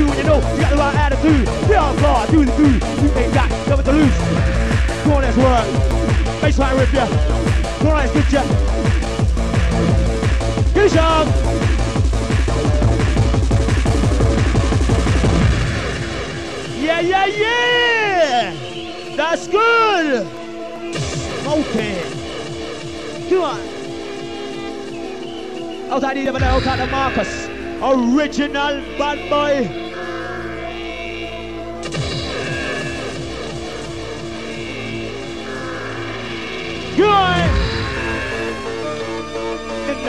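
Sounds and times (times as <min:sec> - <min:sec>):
person shouting over music: 0:00.0 - 0:05.7, 0:10.7 - 0:11.4, 0:16.8 - 0:18.6, 0:36.9 - 0:38.8
trance dance music: 0:00.0 - 0:40.0.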